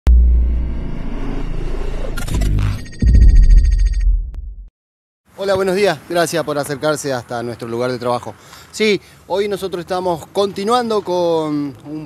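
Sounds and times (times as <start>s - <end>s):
whoosh: 0.1s - 3.9s
deep bass boom: 0.1s - 4.7s.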